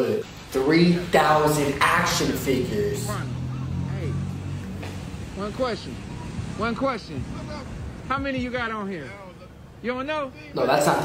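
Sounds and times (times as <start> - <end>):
truck engine idling: 0.2 - 11.0.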